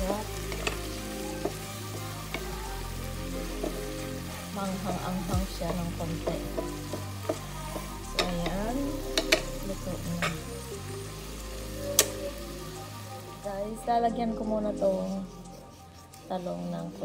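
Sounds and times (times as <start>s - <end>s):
food sizzling: 0.0s - 17.0s
spatula clicking against pan: 0.4s - 1.6s, 5.7s - 8.6s, 9.2s - 9.6s
spatula scraping frying pan: 14.5s - 17.0s.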